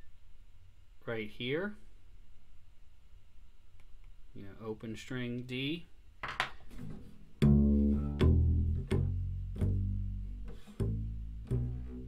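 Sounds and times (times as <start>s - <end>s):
double bass plucked pizzicato: 7.4s - 12.0s.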